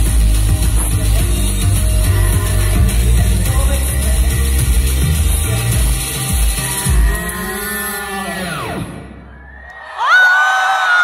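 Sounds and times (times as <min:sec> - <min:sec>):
song backing track: 0:00.0 - 0:09.4
crowd screaming and cheering: 0:05.1 - 0:11.0.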